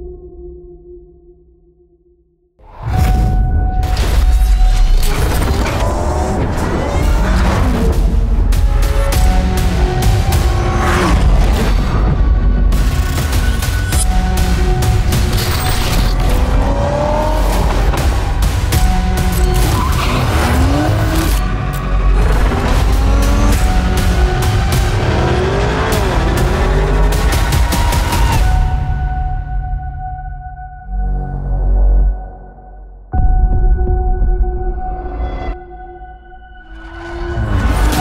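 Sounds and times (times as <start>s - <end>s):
car engine accelerating: 16.0s - 28.5s.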